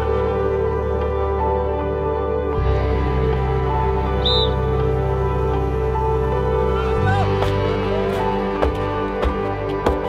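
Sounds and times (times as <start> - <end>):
music with sustained tones and bass: 0.0 - 10.0.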